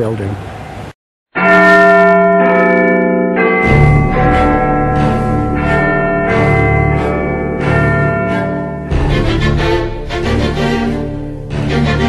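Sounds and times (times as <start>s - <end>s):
large bells chiming: 1.4s - 11.9s.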